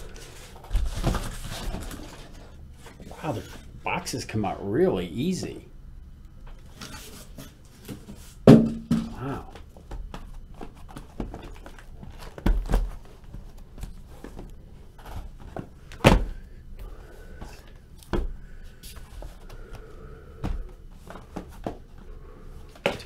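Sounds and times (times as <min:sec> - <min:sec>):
boxes thudding on a table: 0:08.5 - 0:09.2, 0:15.6 - 0:16.4.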